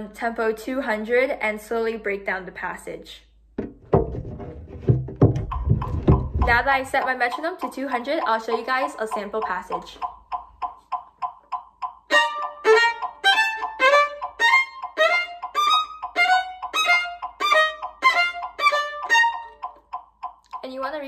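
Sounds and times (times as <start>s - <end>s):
metronome ticking: 5.3s - 21.0s
violin playing fast passage: 12.1s - 19.5s.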